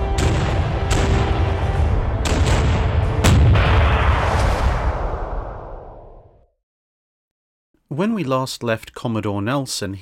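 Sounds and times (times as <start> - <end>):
heavy gun firing with rumble: 0.1 - 1.6, 2.2 - 5.2.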